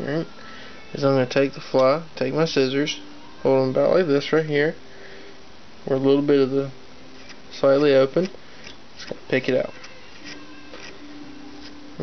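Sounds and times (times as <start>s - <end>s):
faint steady hum: 0.0s - 12.0s
scissor tips scratching yarn: 9.8s - 11.0s.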